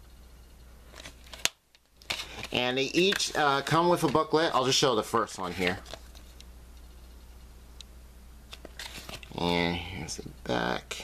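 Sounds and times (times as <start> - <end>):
low room hum: 0.0 - 11.0
plastic case handling: 0.9 - 4.3.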